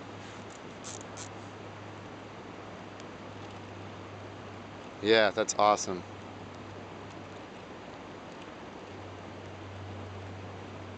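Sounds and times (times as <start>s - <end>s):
low constant hum: 0.0s - 10.9s.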